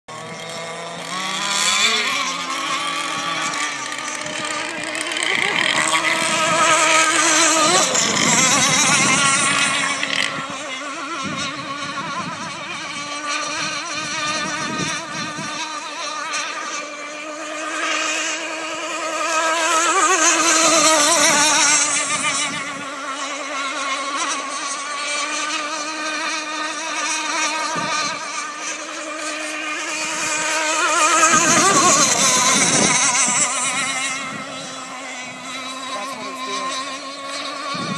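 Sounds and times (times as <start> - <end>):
model speedboat engines high revs: 0.1 - 37.9.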